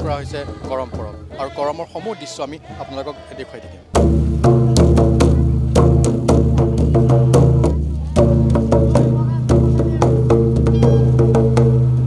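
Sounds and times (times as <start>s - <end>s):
hand drum rhythm: 3.9s - 12.0s.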